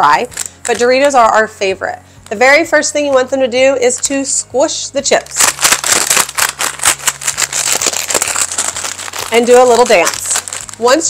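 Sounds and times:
foil bag crinkling: 0.3 - 1.2, 5.2 - 11.0
chips crunching: 5.3 - 11.0.

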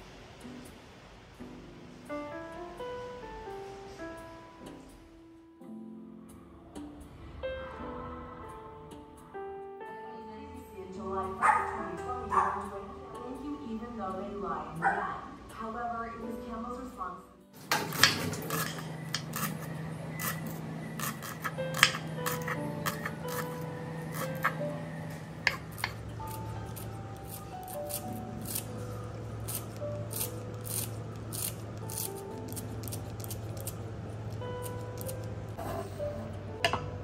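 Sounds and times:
soft background music: 0.0 - 37.0
dog barking: 11.4 - 12.7, 14.8 - 15.2
scissors snipping herb stems: 17.7 - 24.6, 25.4 - 35.3.

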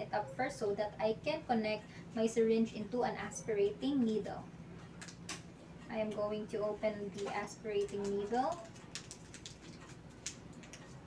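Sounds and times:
packet crackling as torn open: 7.8 - 11.0.

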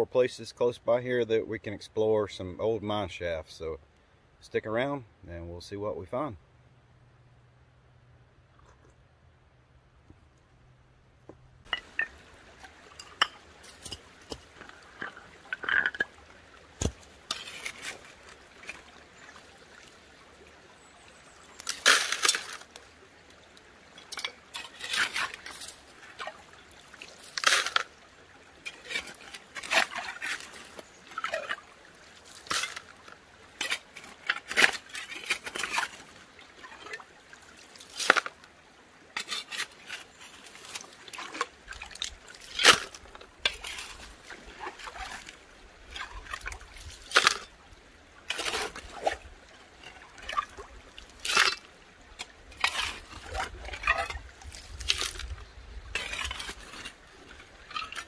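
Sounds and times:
stones clinking: 11.3 - 18.0
creek water rushing: 11.6 - 58.0
shovel scraping wet gravel: 11.7 - 19.3, 21.5 - 22.8, 24.0 - 28.0, 28.6 - 38.4, 39.1 - 47.6, 48.2 - 58.0.

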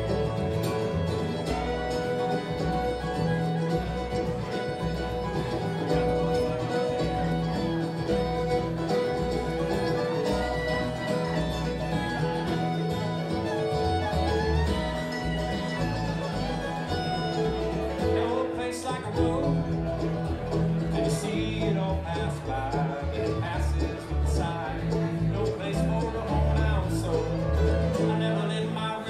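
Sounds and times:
bluegrass band playing: 0.0 - 29.0.

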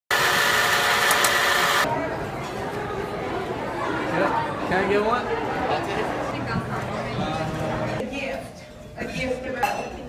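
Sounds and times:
crowd chatter: 1.7 - 10.0.

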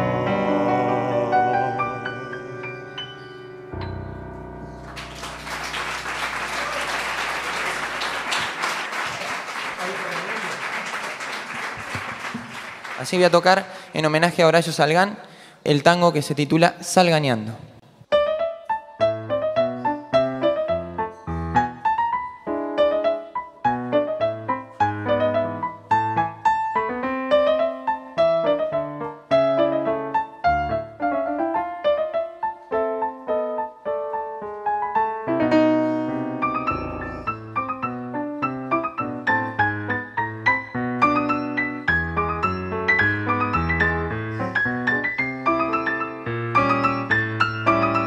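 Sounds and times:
solo piano tango: 0.0 - 8.6, 18.0 - 48.0.

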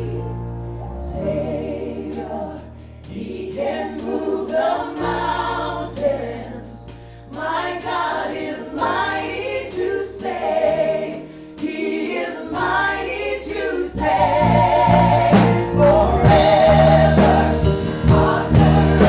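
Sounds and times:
women singing together: 1.2 - 19.0
drums: 2.0 - 12.9, 13.5 - 19.0
bass guitar low notes: 14.0 - 19.0.

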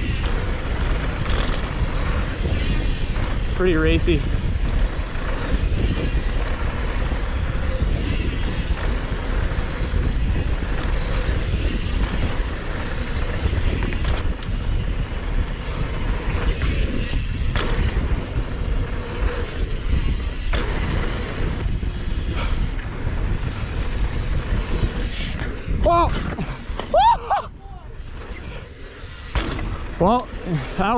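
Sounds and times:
bike clicks and knocks: 0.0 - 27.0, 28.1 - 30.9
bike tyres rolling on dirt: 0.0 - 30.9
wind rushing over microphone: 0.0 - 30.9.

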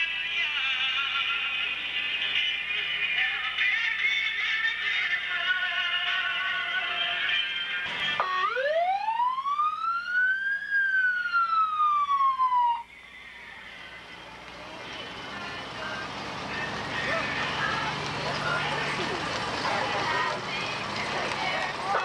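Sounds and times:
passing vehicles: 0.0 - 22.0
fire truck siren wail: 7.8 - 22.0
crowd noise: 12.5 - 22.0.

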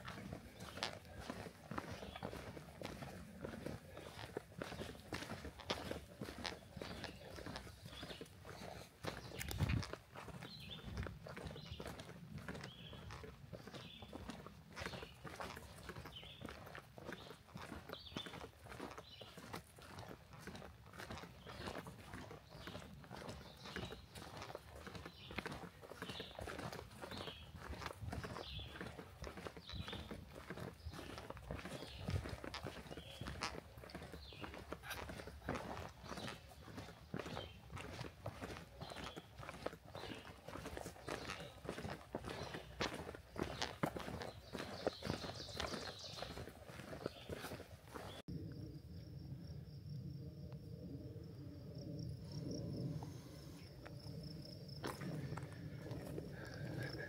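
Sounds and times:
footsteps on leafy forest trail: 0.0 - 48.3, 53.2 - 57.0.

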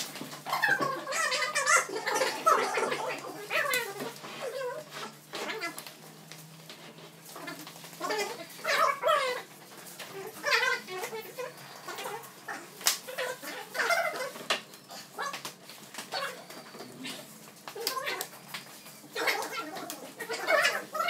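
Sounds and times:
wooden bed feet squeaking on tile: 0.0 - 6.2.

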